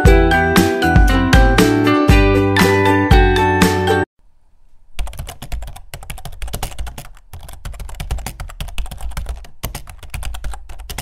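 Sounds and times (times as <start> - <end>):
computer keyboard typing: 5.0 - 11.0.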